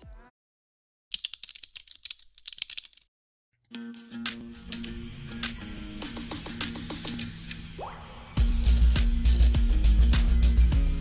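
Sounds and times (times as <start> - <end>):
music: 0.0 - 0.3, 3.6 - 11.0
computer keyboard typing: 1.1 - 3.1.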